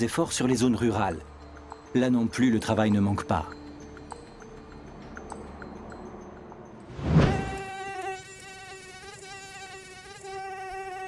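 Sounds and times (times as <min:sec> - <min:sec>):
brief rush of noise: 0:06.9 - 0:07.6
mosquito wings buzzing: 0:07.0 - 0:11.0.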